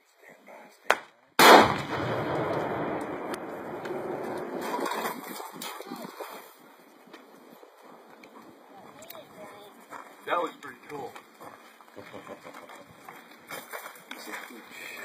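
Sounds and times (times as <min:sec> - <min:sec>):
loud explosion: 0:01.4 - 0:04.7.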